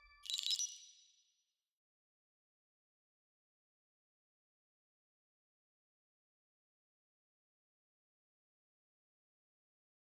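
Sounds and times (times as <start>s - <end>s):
bright high-pitched ding: 0.0s - 1.0s.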